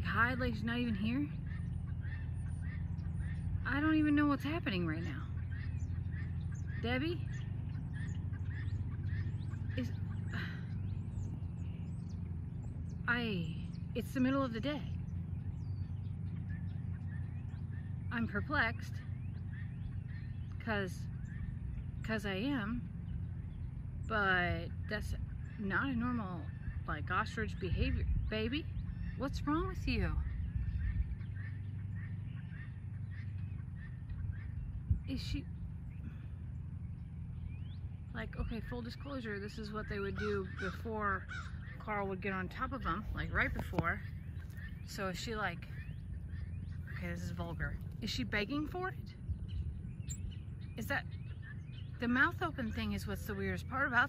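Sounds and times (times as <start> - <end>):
small birds chirping: 0.0 - 54.0
steady low hum: 0.0 - 54.0.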